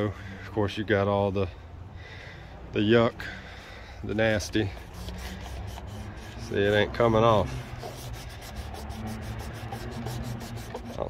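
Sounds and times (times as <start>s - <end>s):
fingertip rubbing vinyl siding: 4.3s - 11.0s.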